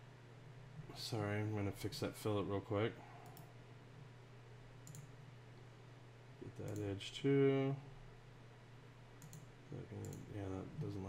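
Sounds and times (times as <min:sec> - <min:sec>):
steady low hum: 0:00.0 - 0:11.0
faint computer mouse click: 0:03.2 - 0:03.5, 0:04.8 - 0:05.1, 0:09.2 - 0:10.3.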